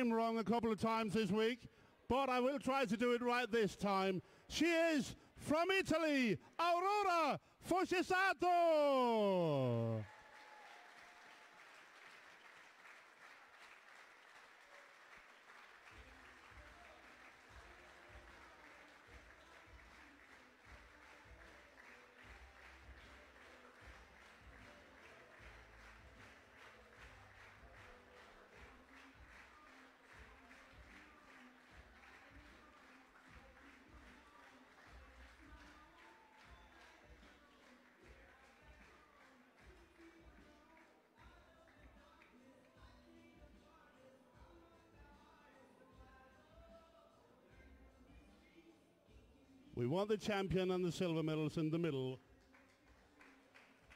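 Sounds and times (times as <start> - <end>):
crowd applause: 8.5 - 33.8.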